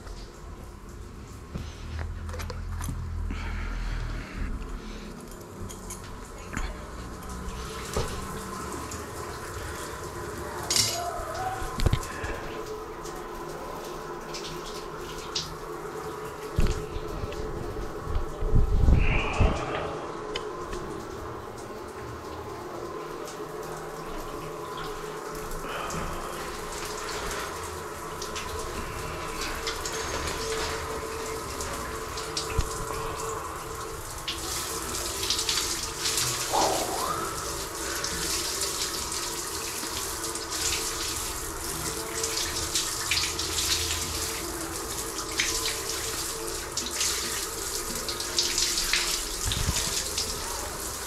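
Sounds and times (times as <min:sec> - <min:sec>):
shower spraying and splashing: 0:00.0 - 0:51.0
water running: 0:00.0 - 0:51.0.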